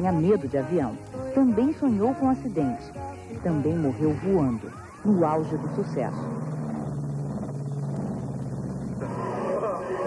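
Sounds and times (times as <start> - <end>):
person speaking: 0.0 - 6.4
airplane engines droning: 3.3 - 10.0.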